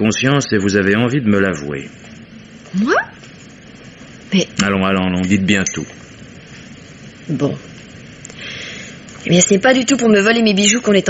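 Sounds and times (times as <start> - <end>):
faint broadcast hiss: 0.0 - 11.0.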